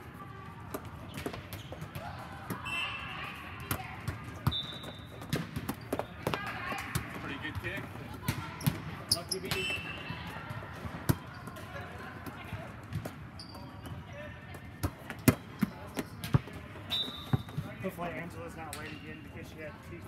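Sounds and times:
players' voices: 0.1 - 20.0
volleyballs struck and bouncing: 0.6 - 18.0
sneaker squeaks: 0.8 - 7.4, 8.2 - 10.4, 11.0 - 11.9, 12.9 - 14.4, 15.1 - 18.0, 18.7 - 19.6.

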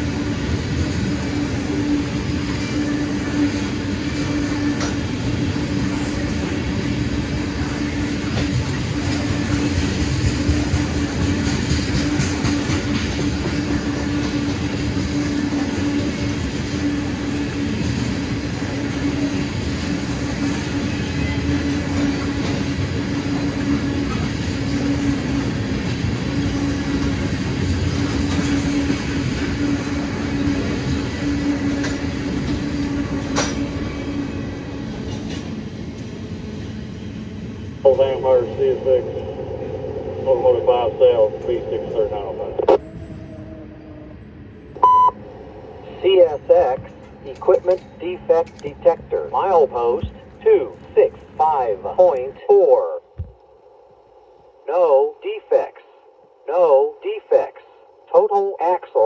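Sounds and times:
freight train rolling past: 0.0 - 54.7.

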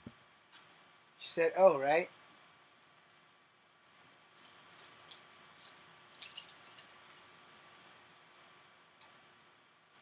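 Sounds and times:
metal tags on chain jingling: 4.4 - 7.9.

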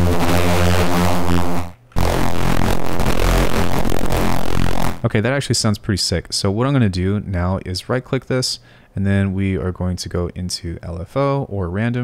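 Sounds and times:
distorted bass synth notes: 0.0 - 5.1.

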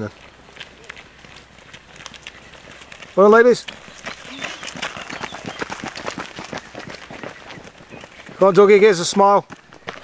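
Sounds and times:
faint footfalls of runners: 0.0 - 10.0.

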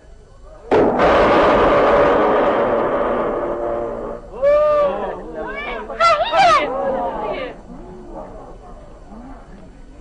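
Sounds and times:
loud cartoon crash: 0.7 - 4.3.

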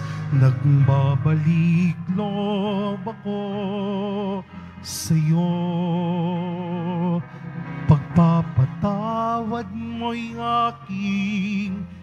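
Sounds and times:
person singing a hymn: 0.0 - 12.0
sustained accompaniment: 0.0 - 12.0.

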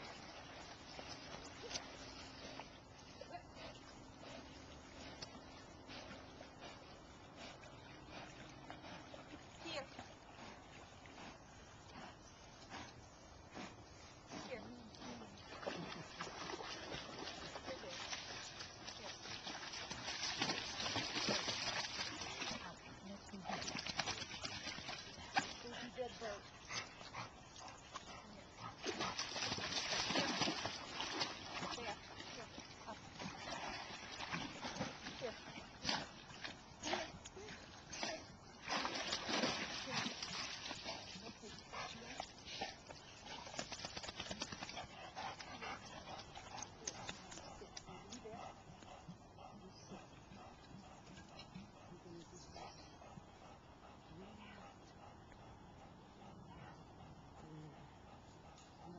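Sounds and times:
water splashing and sloshing: 0.0 - 11.8, 12.4 - 51.6.

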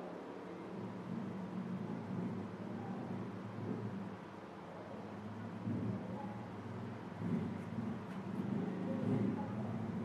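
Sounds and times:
low rumble and hiss: 0.0 - 10.0.

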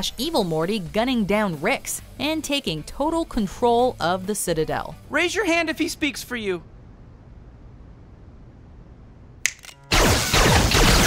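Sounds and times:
sharp click: 9.4 - 9.8
laser gunfire and electric zapping: 9.7 - 11.0.

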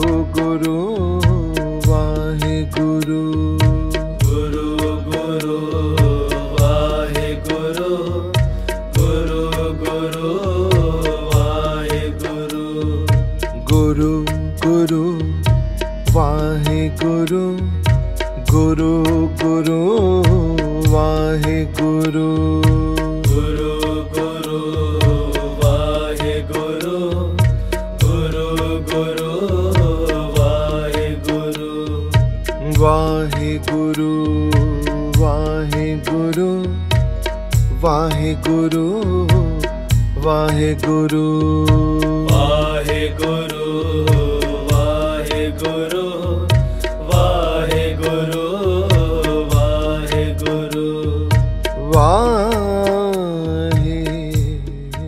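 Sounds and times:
devotional music: 0.0 - 55.0
steady drone: 0.0 - 55.0
hand drum beat: 51.3 - 54.9.

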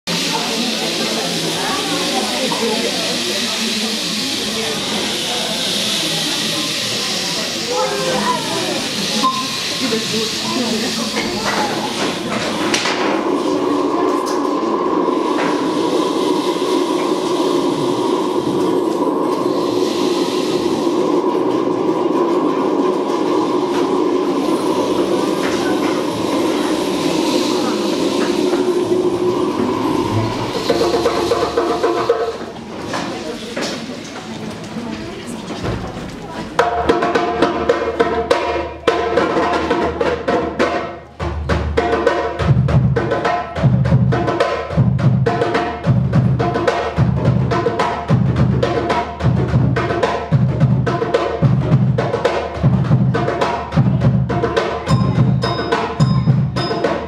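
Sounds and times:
rainsticks rushing hiss: 0.1 - 34.1
children murmuring: 0.1 - 39.4
shakers and djembes playing: 7.6 - 33.6, 35.4 - 57.0.

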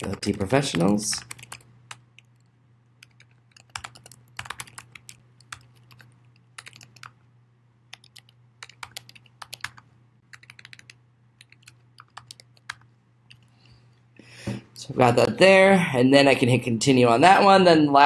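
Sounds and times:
typing on keyboard: 0.0 - 7.2, 7.9 - 13.5
faint low hum: 0.0 - 18.0.

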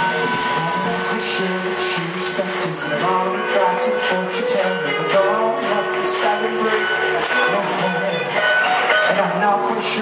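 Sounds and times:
live band music with guitar: 0.0 - 10.0
man's voice: 0.0 - 10.0.

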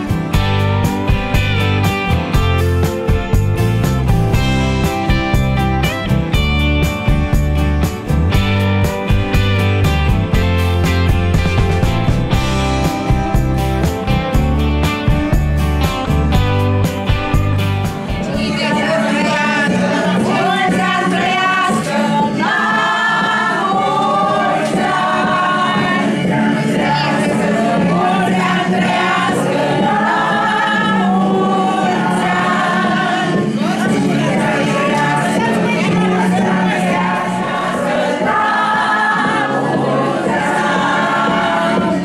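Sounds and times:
group of voices singing: 18.0 - 42.0.

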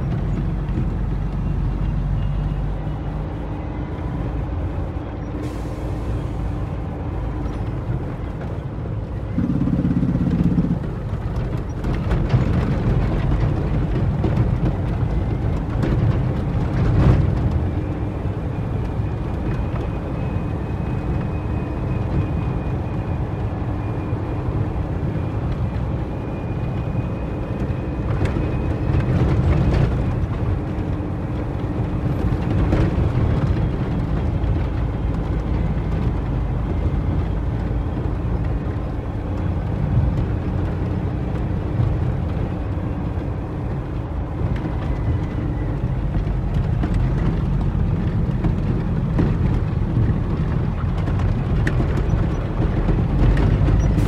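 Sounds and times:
faint drivetrain whine: 0.0 - 54.0
truck diesel engine rumbling: 0.0 - 54.0.

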